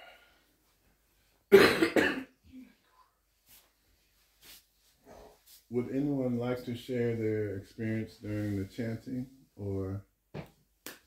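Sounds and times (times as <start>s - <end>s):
person coughing: 1.5s - 2.7s.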